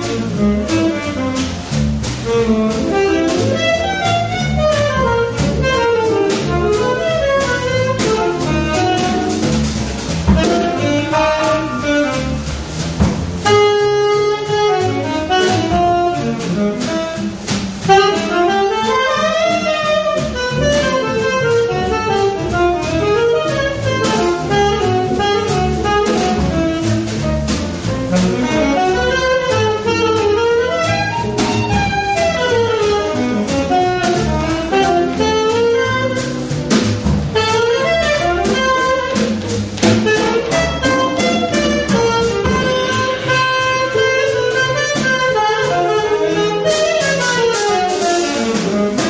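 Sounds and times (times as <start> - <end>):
bass line: 0.0 - 49.0
drums: 0.0 - 49.0
jazz lead instrument melodic runs: 0.0 - 49.0.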